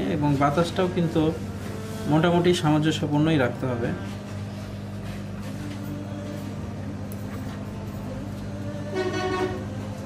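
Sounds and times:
hot-air station humming: 0.0 - 10.0
horn toot: 8.9 - 9.8.

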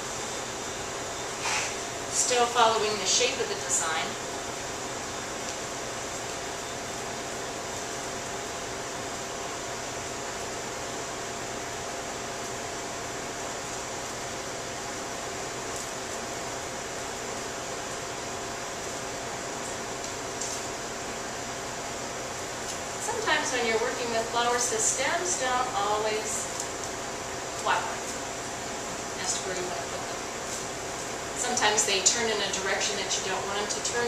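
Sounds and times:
faint tonal hum: 0.0 - 12.2, 20.7 - 34.0.

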